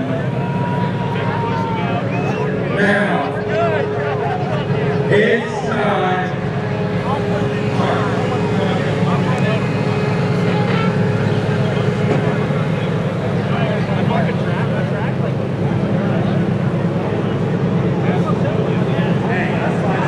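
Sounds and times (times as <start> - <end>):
indistinct voices: 0.0 - 20.0
vehicle engine rumbling: 0.0 - 20.0.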